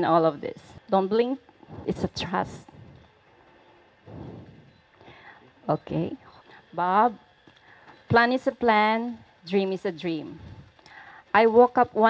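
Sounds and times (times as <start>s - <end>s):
soft rush of sound: 1.5s - 5.6s.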